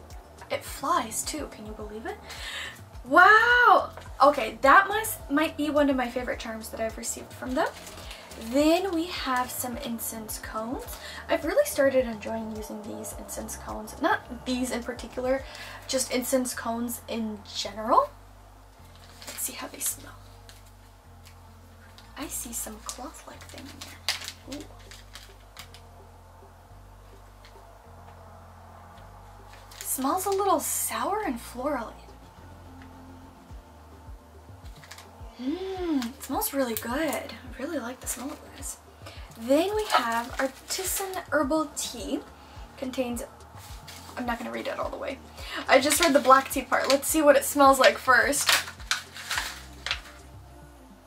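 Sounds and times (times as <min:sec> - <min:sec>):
soft background music: 0:00.0 - 0:51.0
plastic bag crinkling: 0:07.1 - 0:10.0, 0:18.9 - 0:20.8, 0:22.0 - 0:25.9, 0:29.5 - 0:31.0, 0:34.8 - 0:37.3, 0:39.3 - 0:41.7, 0:43.6 - 0:44.8, 0:45.6 - 0:50.2.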